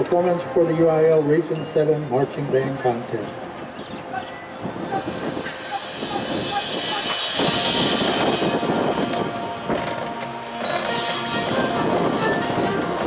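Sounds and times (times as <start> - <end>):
marching band playing: 3.3 - 13.0.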